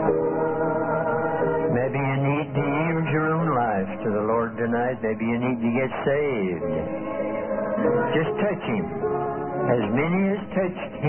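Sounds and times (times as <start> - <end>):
choir singing a hymn: 0.0 - 2.6, 7.0 - 9.9.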